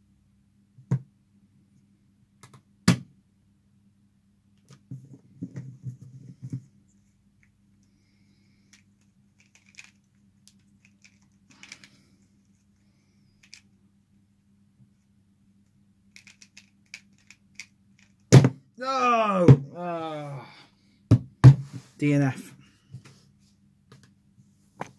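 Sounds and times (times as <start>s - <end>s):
puzzle handling noise: 8.6s - 13.8s, 16.0s - 18.4s
plastic puzzle layers clicking: 9.4s - 11.9s, 16.1s - 18.3s.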